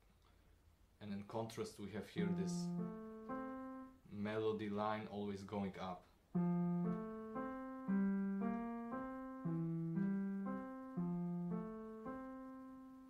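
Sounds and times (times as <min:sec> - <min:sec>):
slow piano notes: 0:02.2 - 0:04.7, 0:06.3 - 0:13.0.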